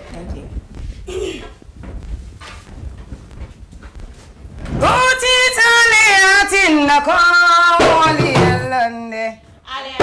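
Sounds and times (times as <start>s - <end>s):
low studio rumble: 0.0s - 7.4s.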